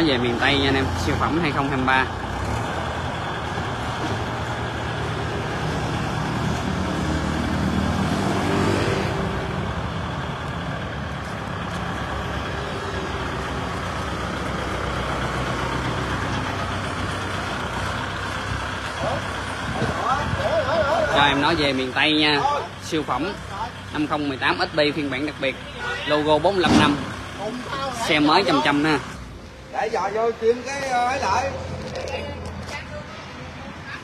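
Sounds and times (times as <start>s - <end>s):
tractor diesel engine under load: 0.0s - 33.8s.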